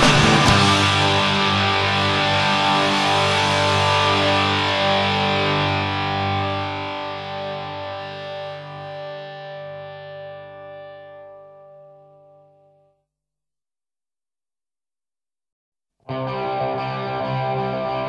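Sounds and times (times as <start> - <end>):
distorted electric guitar chord: 0.0 - 12.8, 16.1 - 18.0.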